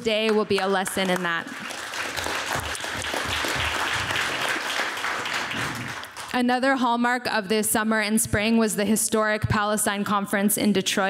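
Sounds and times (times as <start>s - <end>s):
audience applauding: 0.1s - 6.4s.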